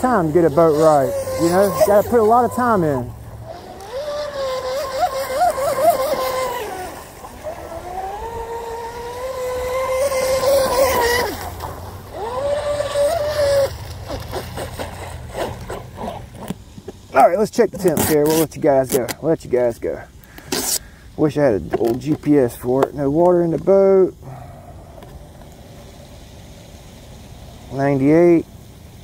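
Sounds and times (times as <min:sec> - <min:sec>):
electric motor high whine: 0:00.0 - 0:16.4
hull and spray hissing on water: 0:00.0 - 0:17.1, 0:24.1 - 0:29.0.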